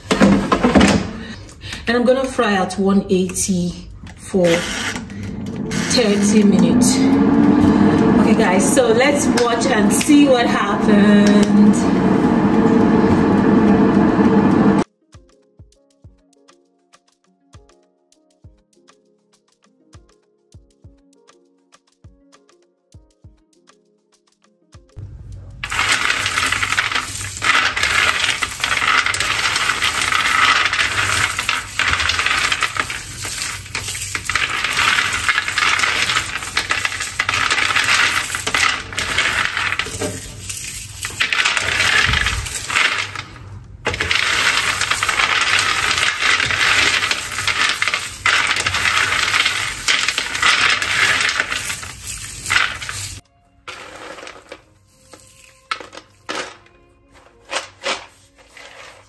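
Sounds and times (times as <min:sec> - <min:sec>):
peanuts clattering in ceramic dish: 0:25.6 - 0:56.6.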